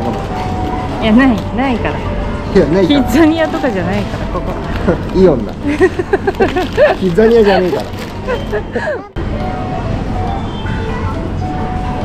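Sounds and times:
faint store music: 0.0s - 12.0s
shopping cart wheels rumbling: 0.0s - 12.0s.

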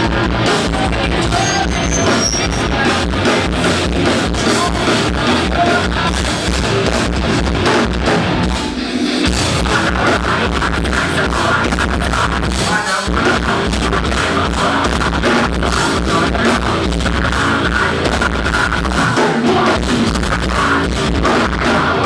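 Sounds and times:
bass guitar: 0.0s - 22.0s
distorted electric guitars: 0.0s - 22.0s
drum kit: 0.0s - 22.0s.

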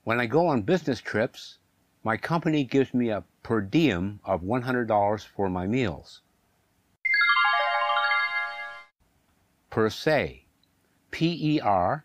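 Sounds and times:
chime jingle of bell-like notes: 7.0s - 8.9s.

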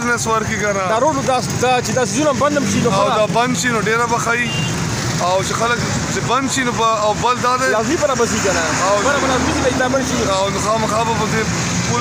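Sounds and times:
auto-rickshaw engine: 0.0s - 12.0s
man talking: 0.0s - 12.0s
street traffic: 0.0s - 12.0s.

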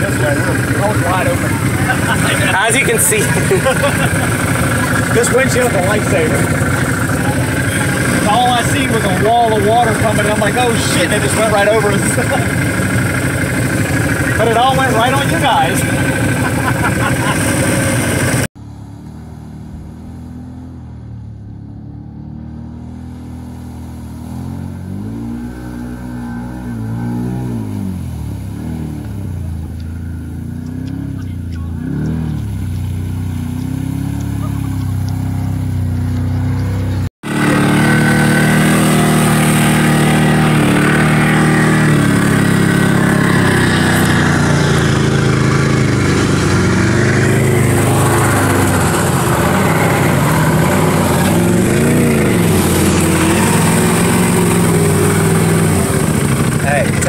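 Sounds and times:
engine revving: 0.0s - 57.0s
rushing noise on moving vehicle: 0.0s - 57.0s
vehicle driving through river: 0.0s - 57.0s.

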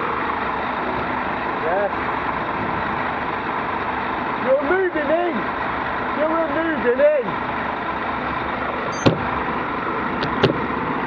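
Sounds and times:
bus engine idling: 0.0s - 11.0s.

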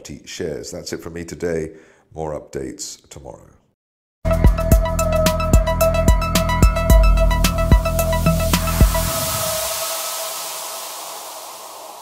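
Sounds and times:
electronic hissing wash: 7.3s - 12.0s.

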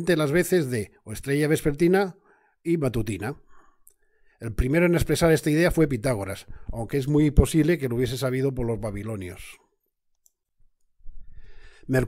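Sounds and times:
man speaking: 0.0s - 3.5s, 4.4s - 9.6s.

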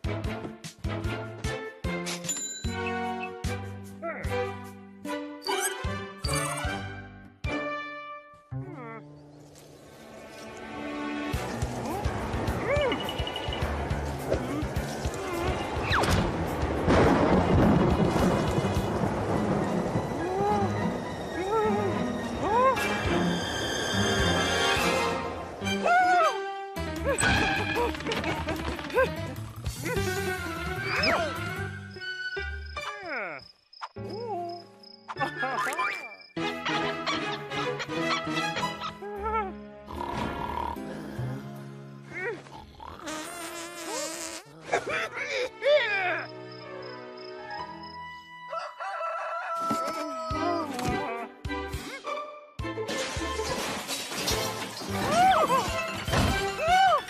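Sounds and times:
background music: 0.0s - 43.4s, 44.5s - 57.0s
cartoon character cries: 39.0s - 39.5s
shrill crowing cry: 48.5s - 50.7s.

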